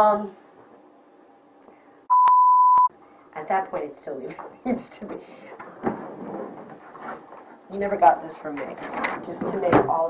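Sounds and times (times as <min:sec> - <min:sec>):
single-tone censor bleep: 0:02.1 - 0:02.9.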